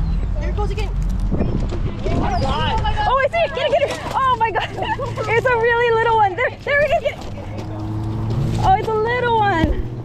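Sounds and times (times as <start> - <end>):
vehicle engine hum: 0.0 - 10.0.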